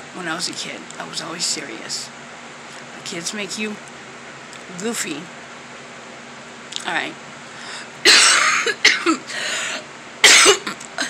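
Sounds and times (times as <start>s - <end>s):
woman coughing: 8.0s - 11.0s.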